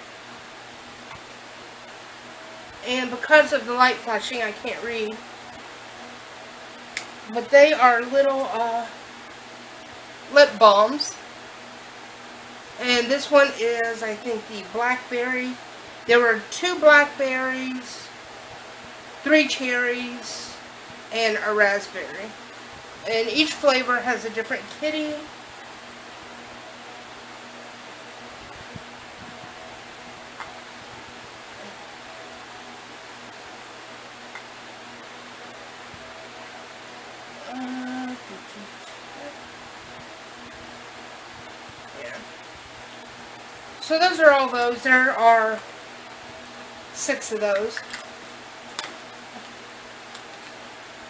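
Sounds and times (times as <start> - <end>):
room noise hiss: 0.0 - 51.0.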